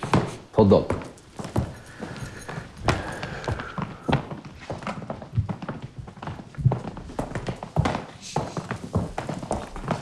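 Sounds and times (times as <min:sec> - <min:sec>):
footsteps on tiled floor: 0:00.0 - 0:10.0.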